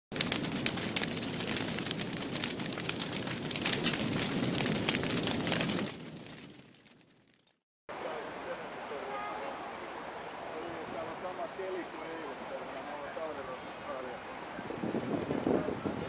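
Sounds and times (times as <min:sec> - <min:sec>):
fire crackling: 0:00.1 - 0:16.0.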